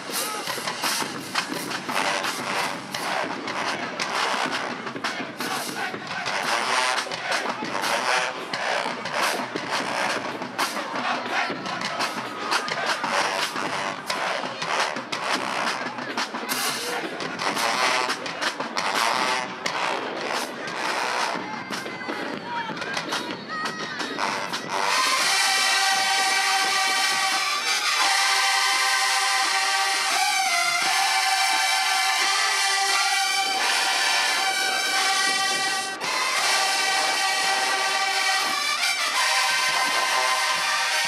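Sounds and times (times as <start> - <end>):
crowd noise and voices: 0.0 - 41.0
horns: 0.0 - 41.0
marching band playing: 0.0 - 41.0.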